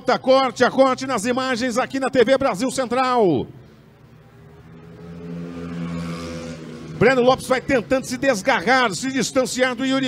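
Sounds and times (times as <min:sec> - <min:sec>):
race car engines: 0:00.6 - 0:10.0.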